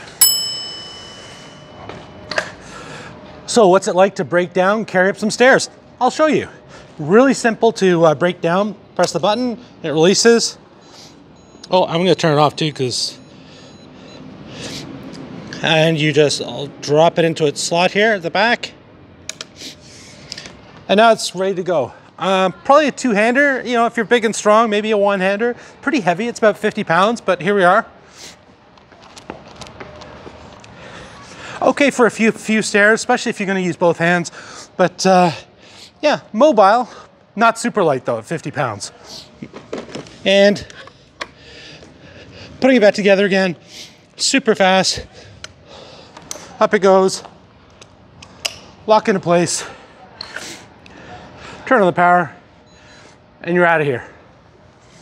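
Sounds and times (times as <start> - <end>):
bell ding: 0.2 - 2.3.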